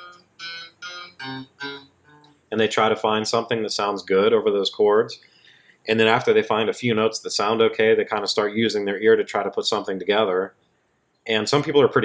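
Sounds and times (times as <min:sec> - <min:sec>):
clean electric guitar notes: 0:00.0 - 0:02.3.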